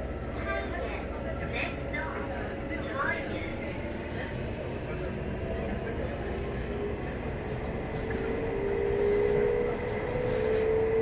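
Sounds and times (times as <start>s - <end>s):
train running rumble: 0.0s - 11.0s.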